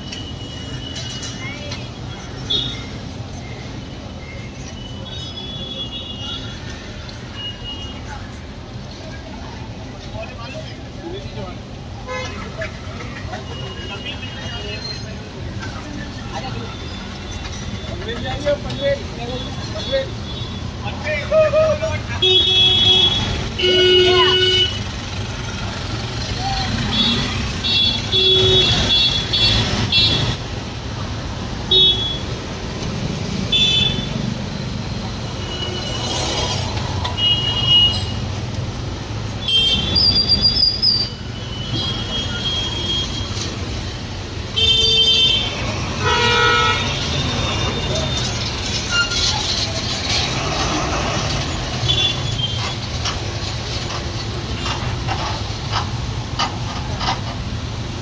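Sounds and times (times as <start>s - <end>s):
busy road traffic: 0.0s - 58.0s.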